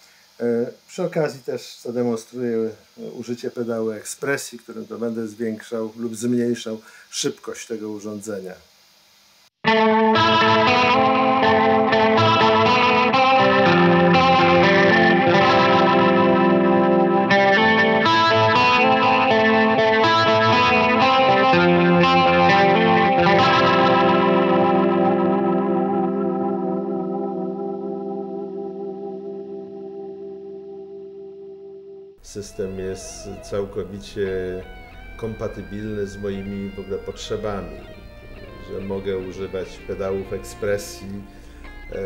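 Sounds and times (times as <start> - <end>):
electric guitar chords with rotary shimmer: 9.6 - 42.0.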